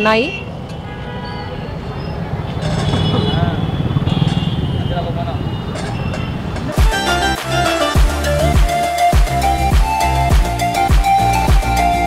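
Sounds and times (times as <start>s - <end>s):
low traffic rumble: 0.0s - 8.5s
background music: 6.1s - 12.0s.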